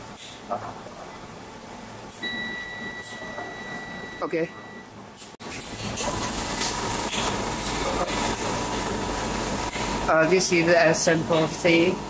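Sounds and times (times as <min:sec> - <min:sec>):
cutting machine hum and hiss: 0:05.4 - 0:12.0.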